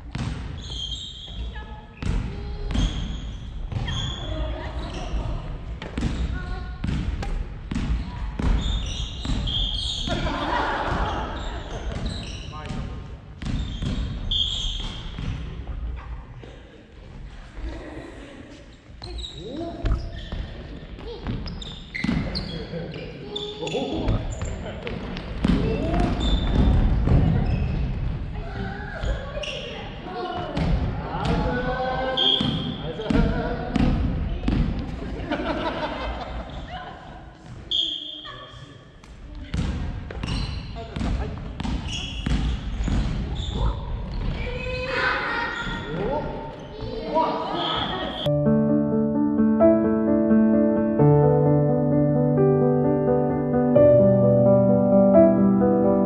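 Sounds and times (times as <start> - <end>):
shoes squeaking on wooden floor: 11.0 - 12.8, 13.5 - 15.2, 18.6 - 24.6, 40.2 - 44.8.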